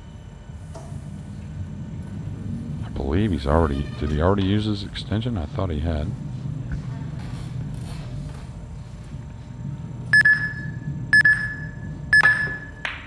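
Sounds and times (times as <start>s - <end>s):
shot clock high beeps: 10.2s - 12.8s.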